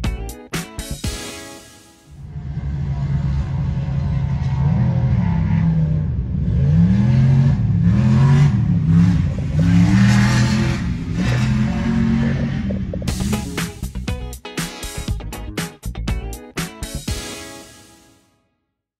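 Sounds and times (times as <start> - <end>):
vehicle engine revving: 2.2 - 14.0.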